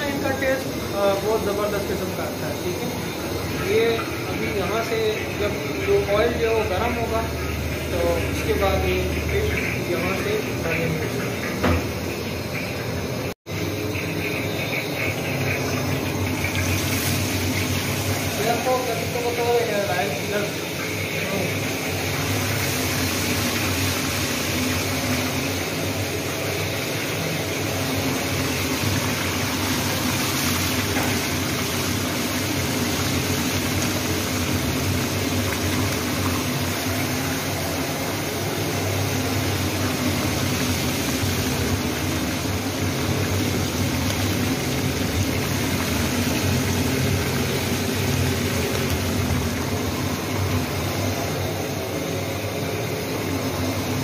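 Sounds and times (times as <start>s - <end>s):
fish deep-frying in oil: 0.0s - 54.0s
gas burner low rush: 0.0s - 54.0s.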